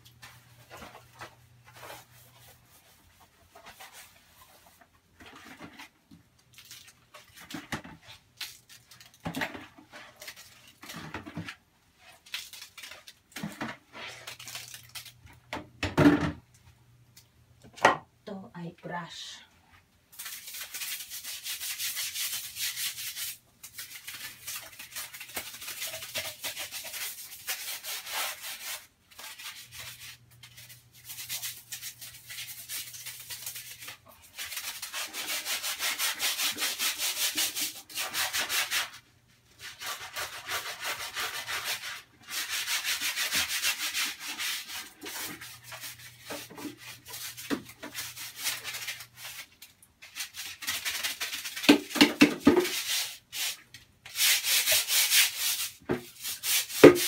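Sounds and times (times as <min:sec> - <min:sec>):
sponge scrubbing wet surface: 0:20.2 - 0:39.0, 0:39.6 - 0:57.0.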